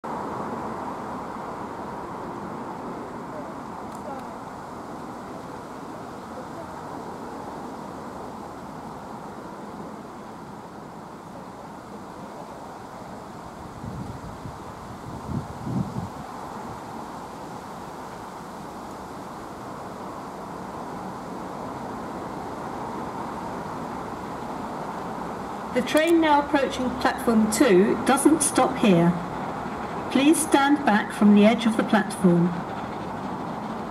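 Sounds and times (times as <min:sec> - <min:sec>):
low outdoor rumble and hiss: 0:00.0 - 0:33.9.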